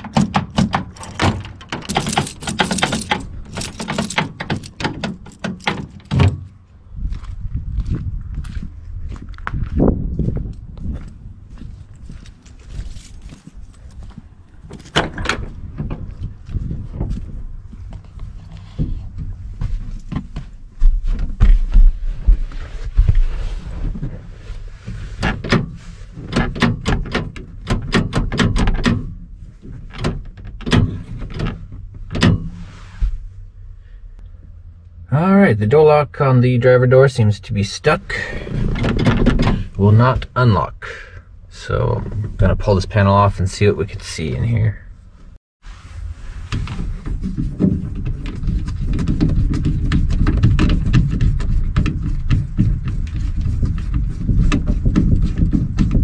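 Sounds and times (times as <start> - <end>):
key working in a lock: 0.0 - 6.3
car door thunks and knocks: 0.0 - 6.6
heavy low bumps: 0.0 - 25.1, 45.9 - 56.0
keys jingling on a ring: 1.8 - 5.4, 12.3 - 14.0.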